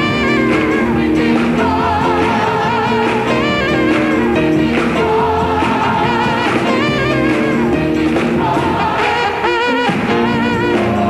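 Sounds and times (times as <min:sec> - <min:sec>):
choir singing gospel: 0:00.0 - 0:11.0
saxophone lead: 0:00.0 - 0:11.0.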